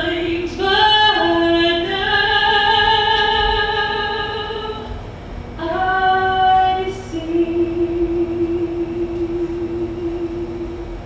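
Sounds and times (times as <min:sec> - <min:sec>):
woman singing long-held notes: 0:00.0 - 0:04.9, 0:05.6 - 0:11.0.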